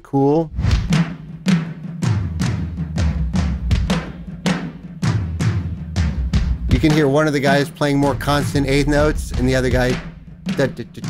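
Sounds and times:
low ringing tom drum hits: 0.6s - 11.0s.

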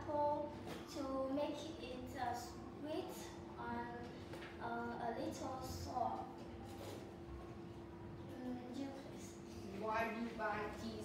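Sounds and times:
girl talking: 0.0s - 6.6s, 8.3s - 11.0s.

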